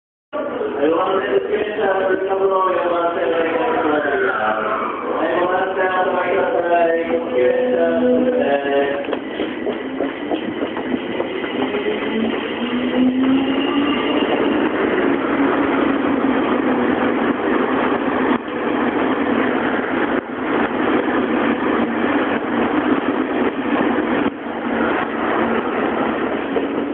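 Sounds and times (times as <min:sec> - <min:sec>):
train running past: 0:00.4 - 0:26.9.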